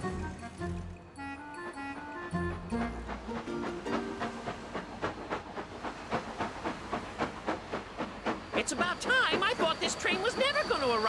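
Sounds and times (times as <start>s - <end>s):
steam locomotive chuffing: 1.6s - 11.0s.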